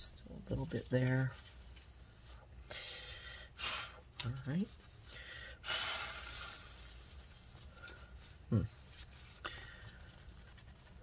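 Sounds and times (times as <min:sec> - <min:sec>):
faint background noise: 0:00.0 - 0:11.0
paper towel rubbing on metal: 0:06.3 - 0:11.0.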